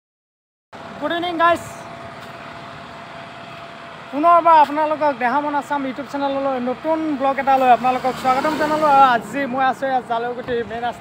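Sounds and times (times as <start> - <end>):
roadside traffic hiss: 0.8 - 11.0.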